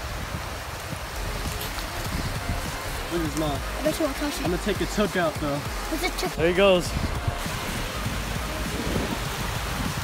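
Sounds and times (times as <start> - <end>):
small waves washing on shore: 0.0 - 10.0.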